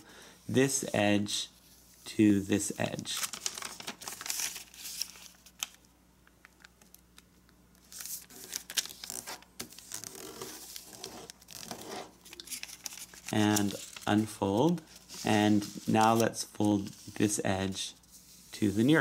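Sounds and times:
paper crinkling: 2.8s - 17.2s.

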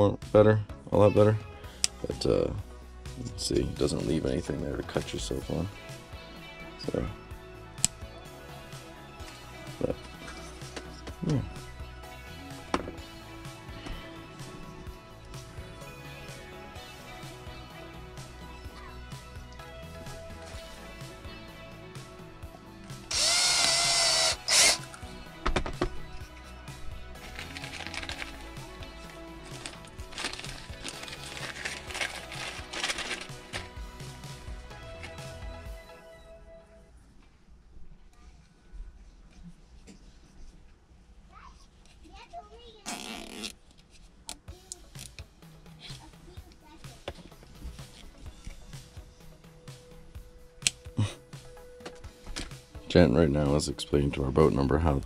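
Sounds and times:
background music: 0.0s - 37.2s, 44.3s - 55.0s
cordless drill drilling: 23.1s - 24.9s
flush cutters snipping zip tie: 23.1s - 25.0s.

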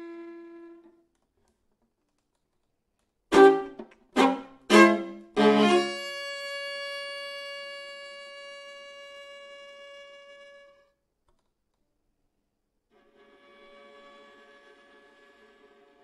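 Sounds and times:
viola sustained note: 3.3s - 10.8s.

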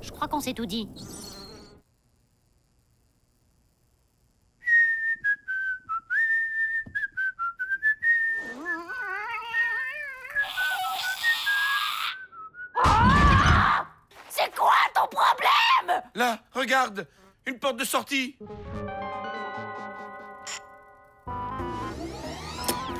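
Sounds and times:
whistling tune: 4.6s - 8.7s, 10.6s - 12.8s.

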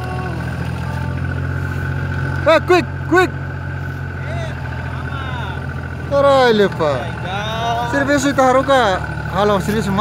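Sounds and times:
small vehicle engine running: 0.0s - 10.0s.

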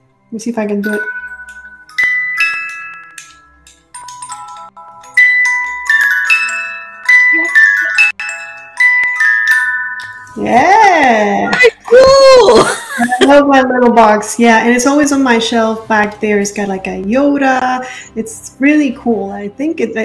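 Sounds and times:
music box melody: 0.8s - 11.4s.

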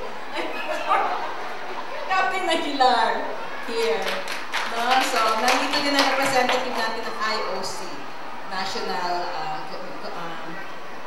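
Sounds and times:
woman laughing: 0.4s - 1.2s.

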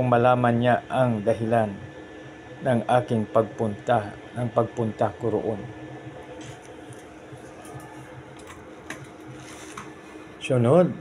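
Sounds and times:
low background hum: 0.0s - 11.0s
thin pages rustling: 8.4s - 10.1s.

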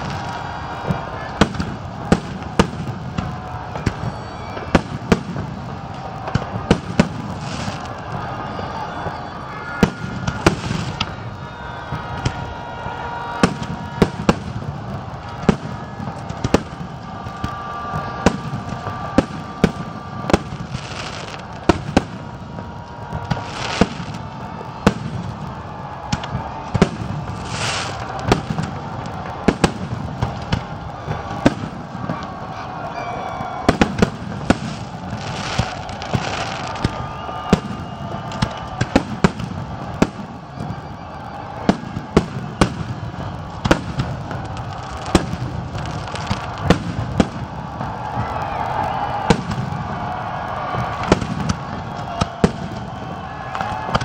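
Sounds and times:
fireworks bursting: 0.0s - 54.0s.

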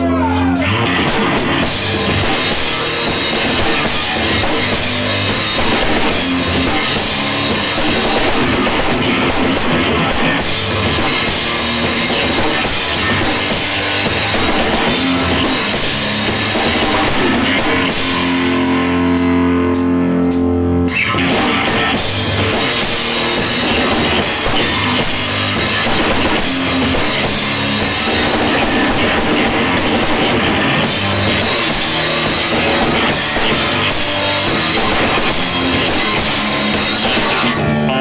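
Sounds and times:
drum kit with cymbal wash: 0.0s - 38.0s
electric bass: 0.0s - 38.0s.

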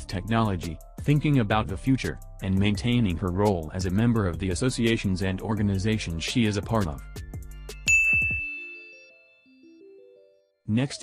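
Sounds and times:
background music: 0.0s - 11.0s
bright chime ding: 7.9s - 9.8s.

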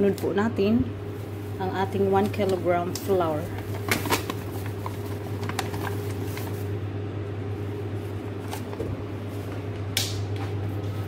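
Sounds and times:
low electrical hum: 0.0s - 11.0s
paper bag rustling: 1.1s - 6.8s, 7.6s - 9.7s.

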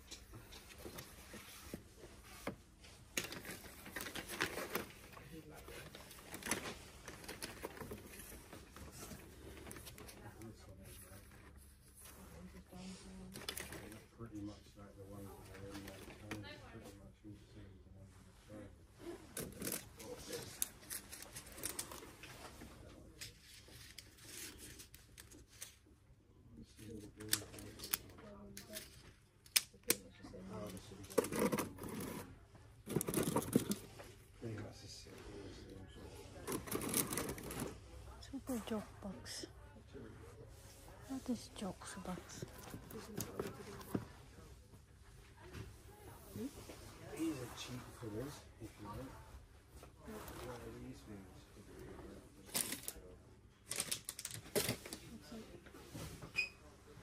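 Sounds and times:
shop background noise: 0.0s - 57.0s
plastic packages clicking: 53.6s - 55.0s.

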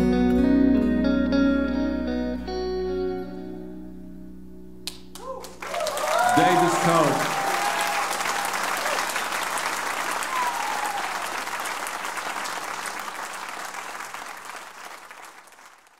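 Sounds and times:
audience applauding and cheering: 4.9s - 15.9s
person shouting: 6.0s - 7.8s.

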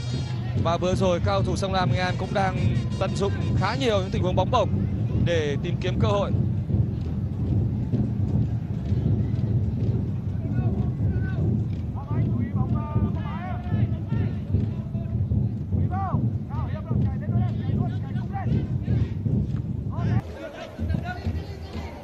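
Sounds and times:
stadium crowd rumble: 0.0s - 22.0s
fans shouting: 20.0s - 22.0s.

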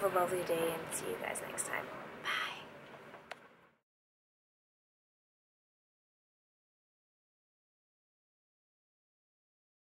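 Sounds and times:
faint background hiss: 0.0s - 3.8s.

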